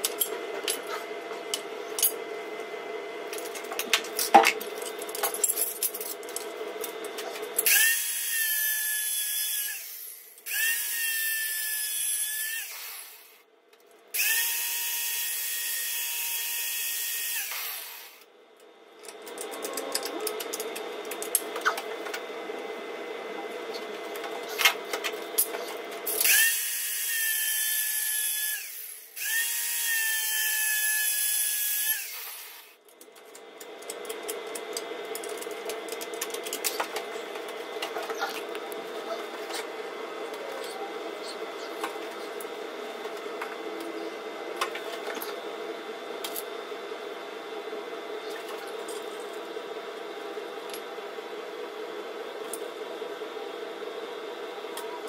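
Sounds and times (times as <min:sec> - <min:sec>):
angle grinder cutting metal: 0:07.6 - 0:13.4, 0:14.2 - 0:18.2, 0:25.4 - 0:32.8.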